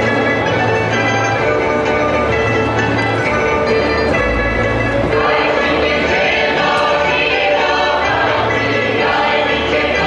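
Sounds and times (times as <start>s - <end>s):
group singing folk song: 4.6s - 10.0s.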